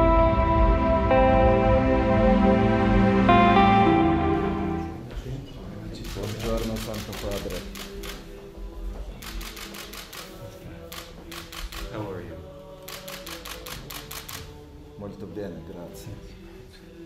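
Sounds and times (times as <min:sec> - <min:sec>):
soft background music: 0:00.0 - 0:17.0
camera shutters clicking in bursts: 0:06.0 - 0:08.3, 0:09.2 - 0:11.9, 0:12.8 - 0:14.6.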